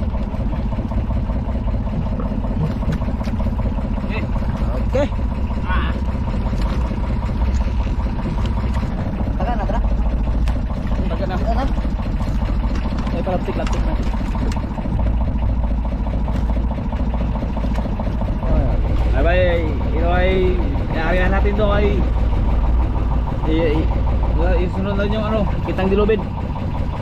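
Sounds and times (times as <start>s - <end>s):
boat engine droning: 0.0s - 27.0s.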